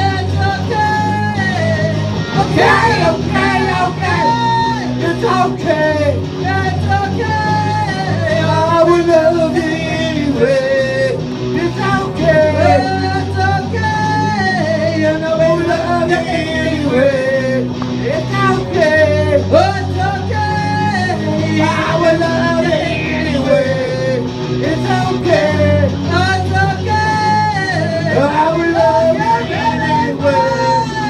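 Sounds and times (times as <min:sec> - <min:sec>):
person singing wordless notes: 0:00.0 - 0:31.0
two guitars strummed: 0:00.0 - 0:31.0.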